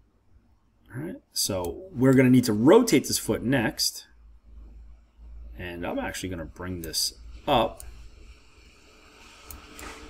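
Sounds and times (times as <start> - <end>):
low room hiss: 0.0 - 10.0
computer mouse clicks: 9.4 - 10.0.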